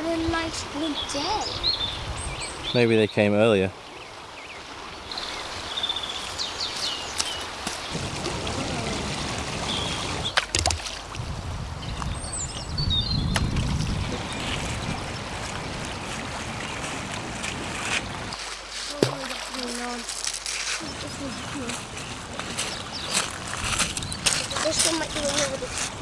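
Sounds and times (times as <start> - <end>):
river flowing over gravel: 0.0 - 1.6, 2.8 - 12.2, 13.4 - 26.0.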